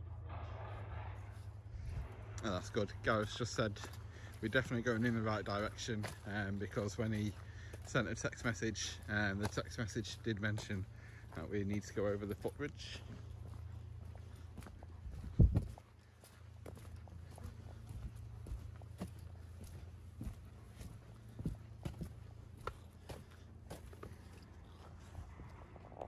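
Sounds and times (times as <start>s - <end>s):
steady low rumble: 0.0s - 26.0s
footsteps on wooden deck: 3.1s - 25.1s.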